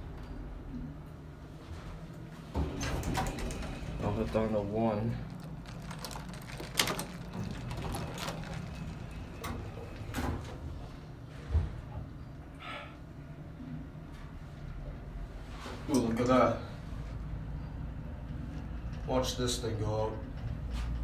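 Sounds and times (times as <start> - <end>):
low steady hum: 0.0 - 21.0
elevator doors sliding shut: 2.5 - 11.9.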